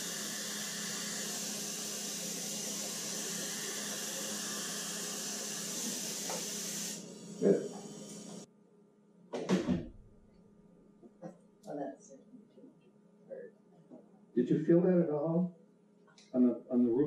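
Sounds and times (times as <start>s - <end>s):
dental suction hissing: 0.0s - 8.5s.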